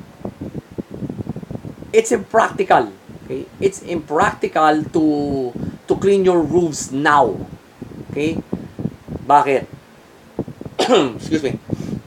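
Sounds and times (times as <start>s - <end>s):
air buffeting microphone: 0.0s - 12.0s.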